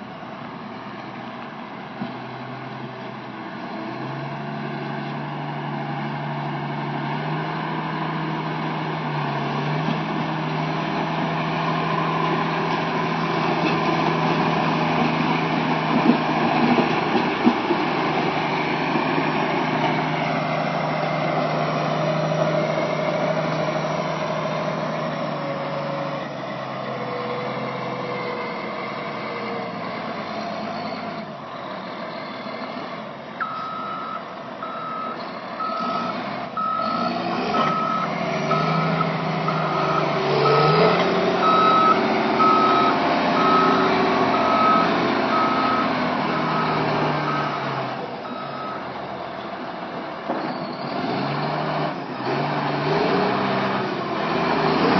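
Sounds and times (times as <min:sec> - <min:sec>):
diesel engine running: 0:00.0 - 0:54.9
reversing alarm beeping: 0:33.4 - 0:48.8.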